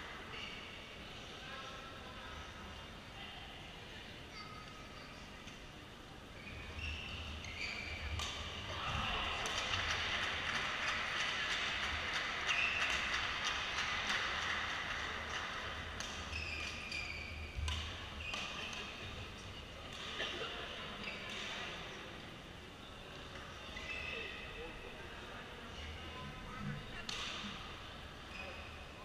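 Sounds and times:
shoes squeaking on court: 6.4 - 8.4, 16.2 - 18.8
rackets hitting shuttlecock: 17.6 - 18.9.

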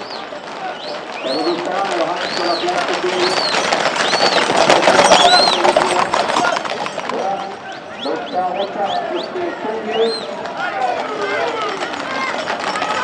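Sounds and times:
horse hooves clattering on pavement: 0.0 - 13.0.

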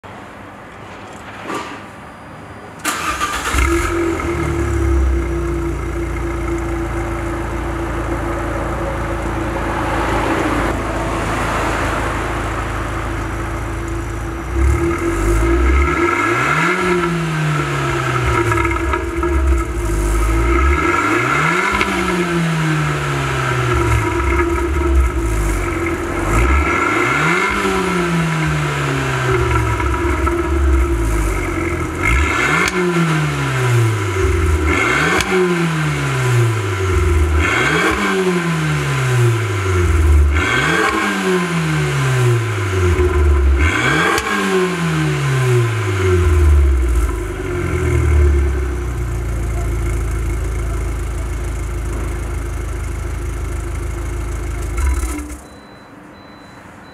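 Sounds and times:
car engine starting and idling: 2.8 - 56.9
engine revving: 2.9 - 55.4.

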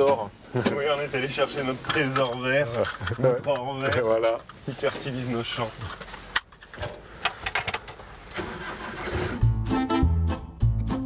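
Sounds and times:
van engine and road noise: 0.0 - 9.7.

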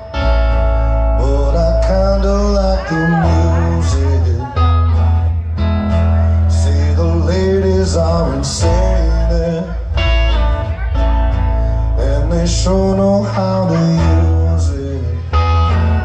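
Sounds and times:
bass guitar: 0.0 - 16.0
electric guitars: 0.0 - 16.0.

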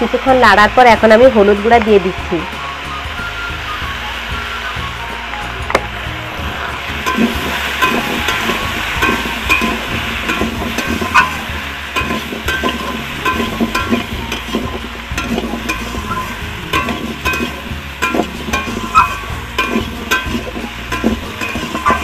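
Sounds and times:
food frying sizzle: 0.0 - 22.0
metal spatula scraping wok: 6.3 - 22.0.

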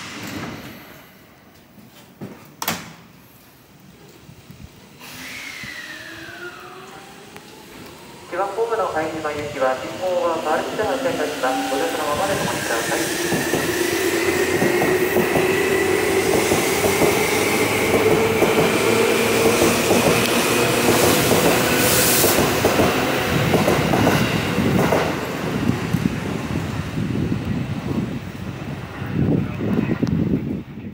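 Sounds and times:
train wheels rumbling over rail joints: 13.2 - 28.5.

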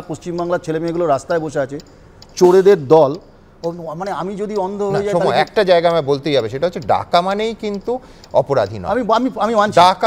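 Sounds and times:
men debating: 0.0 - 10.0.

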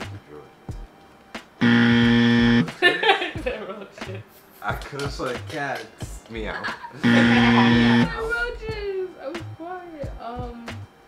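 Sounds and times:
game show buzzer: 1.6 - 2.7, 7.0 - 8.3
people laughing: 2.7 - 4.4, 6.4 - 8.4.

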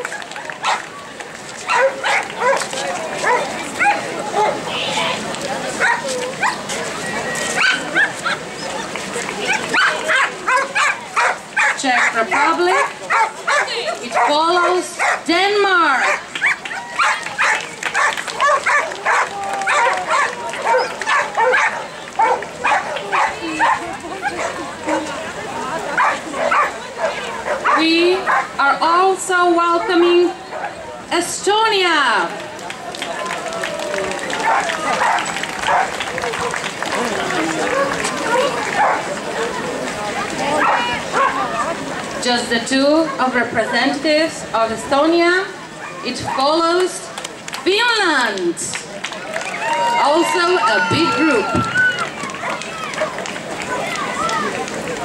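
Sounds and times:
dogs barking and yipping: 0.0 - 0.9, 1.6 - 4.6, 5.8 - 15.3, 15.9 - 25.2, 25.9 - 28.6, 29.7 - 30.8, 34.4 - 36.0, 37.6 - 39.1, 40.5 - 41.8, 50.8 - 53.2
crowd voices: 0.0 - 55.0
people chattering: 0.0 - 55.0
dog yelping: 9.5 - 15.2, 16.0 - 24.5.

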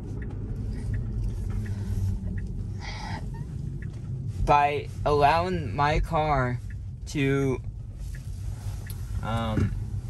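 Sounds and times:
road and tyre rumble in car: 0.0 - 10.0.

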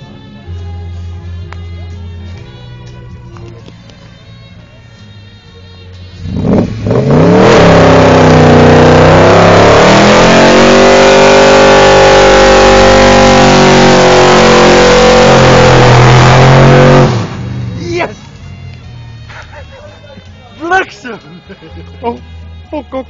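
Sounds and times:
car engine revving hard: 6.2 - 17.8.

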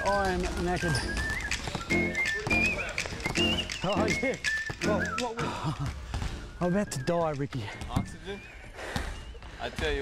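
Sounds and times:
basketballs bouncing on wooden floor: 0.0 - 3.8, 7.6 - 8.3.

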